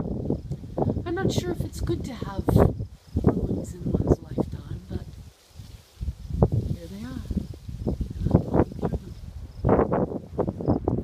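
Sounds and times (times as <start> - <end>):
scrub brushing and rustling: 3.0 - 9.3.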